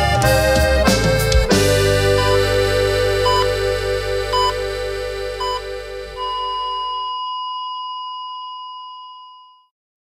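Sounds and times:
low backing notes: 0.1s - 7.1s
high electronic keyboard tone: 1.5s - 9.7s.

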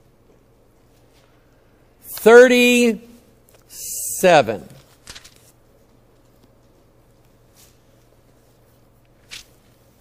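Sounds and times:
faint steady hum: 0.0s - 10.0s
page being turned: 4.7s - 5.6s, 9.2s - 9.7s.

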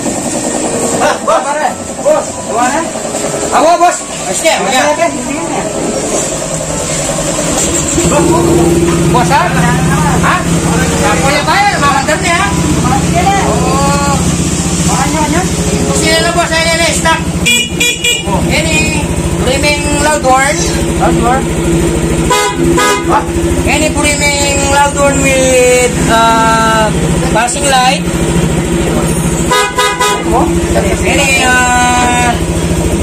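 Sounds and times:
scooter engine idling: 0.0s - 33.0s
men talking: 0.6s - 29.2s, 30.0s - 32.6s
short horn beeps: 17.4s - 18.4s.

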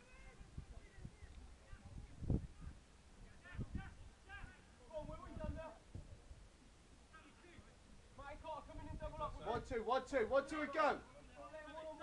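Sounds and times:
distant shouts of footballers: 2.6s - 5.8s.

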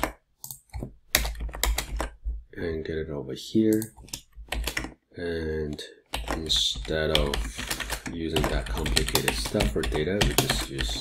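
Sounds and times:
computer keyboard keystrokes: 0.0s - 2.2s, 3.7s - 5.0s, 6.1s - 11.0s.

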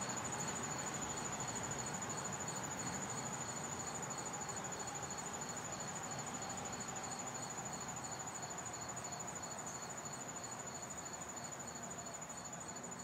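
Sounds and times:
high cricket trill: 0.0s - 13.0s
low pulsing cricket chirp: 0.0s - 13.0s.

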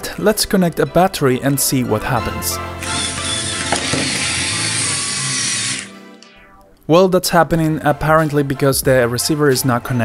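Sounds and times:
small gear motors whirring: 2.8s - 6.0s.

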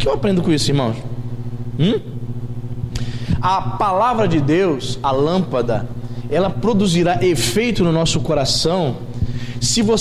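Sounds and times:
steady low hum: 0.0s - 10.0s
man's rising hum: 1.7s - 3.4s.

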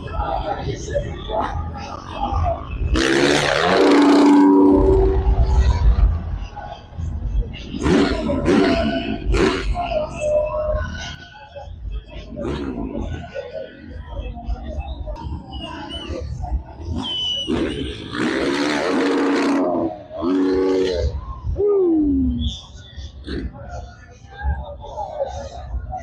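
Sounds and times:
announcer over loudspeakers: 2.9s - 5.6s, 17.6s - 22.6s
crowd cheering: 18.6s - 22.6s.

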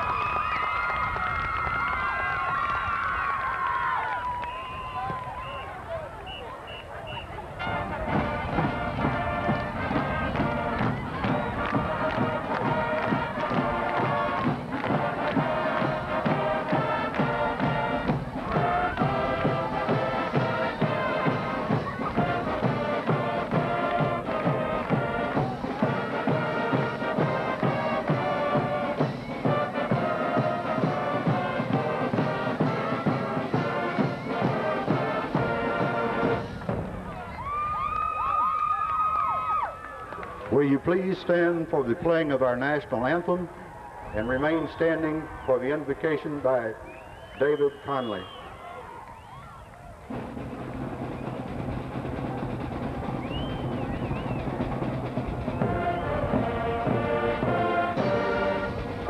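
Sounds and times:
marching band brass: 1.0s - 38.5s, 39.3s - 59.0s
steady drum beat: 7.8s - 37.3s, 50.1s - 59.0s.

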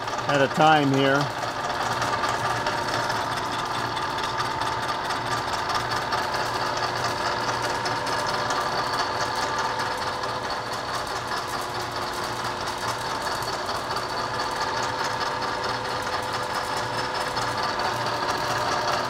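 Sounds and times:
milling machine cutting metal: 0.0s - 19.0s.

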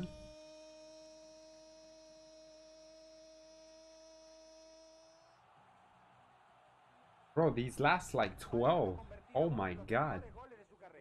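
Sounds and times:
faint steady humming tone: 0.0s - 5.3s.

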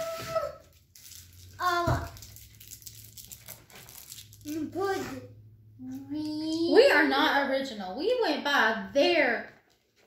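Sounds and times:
wrapper crinkling: 0.6s - 4.7s.

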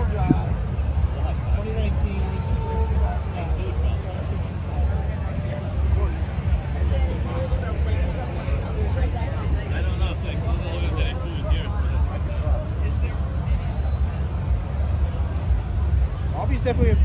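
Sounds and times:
constant low rumble: 0.0s - 17.0s
people talking indistinctly: 0.0s - 17.0s.

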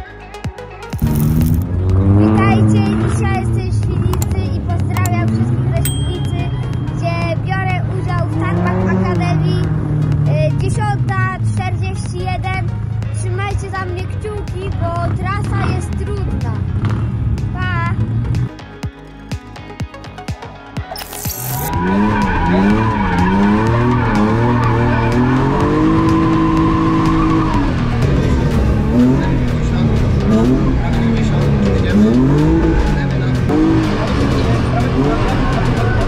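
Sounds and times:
background music: 0.0s - 36.0s
young boy talking: 2.2s - 16.6s, 17.5s - 18.0s.

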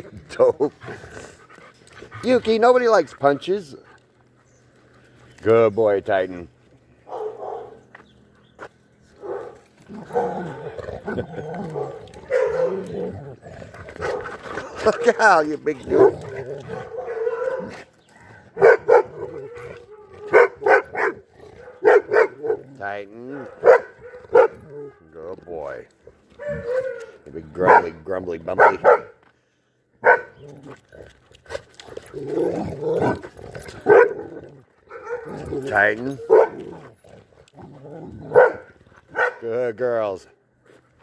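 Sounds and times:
dog barking: 7.1s - 7.8s, 9.2s - 10.3s, 11.8s - 12.8s, 16.0s - 17.7s, 18.6s - 22.6s, 23.4s - 24.6s, 26.4s - 27.9s, 28.6s - 29.2s, 30.0s - 30.4s, 33.8s - 34.2s, 34.9s - 35.4s, 36.2s - 36.6s, 38.3s - 39.4s.

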